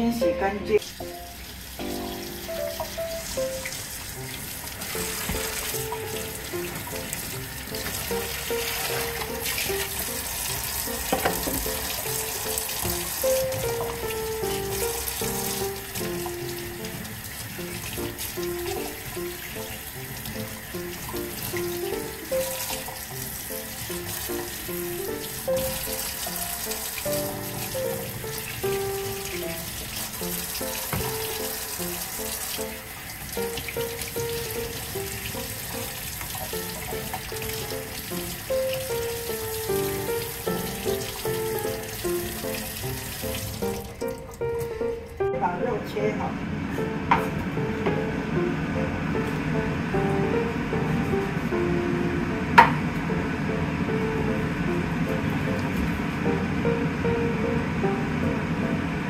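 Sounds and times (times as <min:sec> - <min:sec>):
background music melody: 0:00.0 - 0:59.0
tap running into steel sink: 0:02.7 - 0:09.9, 0:11.0 - 0:12.2, 0:30.2 - 0:32.0, 0:52.6 - 0:52.8.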